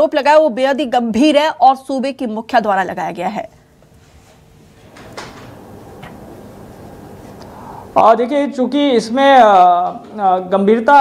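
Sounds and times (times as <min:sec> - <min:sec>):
audio line hiss: 0:03.5 - 0:11.0.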